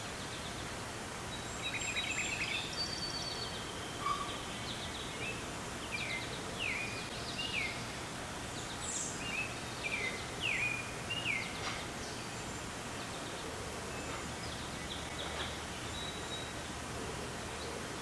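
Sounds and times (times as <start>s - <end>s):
birds singing: 0.0s - 18.0s
steady background hiss: 0.0s - 18.0s.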